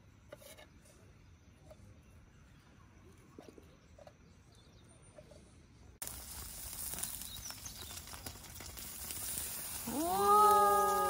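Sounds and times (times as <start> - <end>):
steak sizzling on a grill: 6.0 - 11.0
drawn-out voiced call: 9.8 - 11.0.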